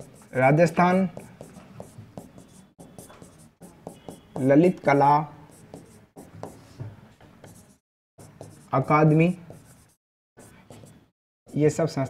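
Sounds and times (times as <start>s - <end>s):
pen tapping and scratching: 0.0s - 0.4s, 1.2s - 4.9s, 5.5s - 6.8s, 7.4s - 8.7s.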